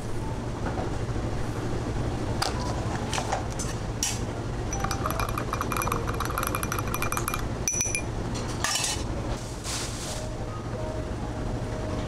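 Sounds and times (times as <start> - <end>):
metal spoon clinking against glass: 4.7 - 8.1
short hissy scrape: 9.5 - 10.3.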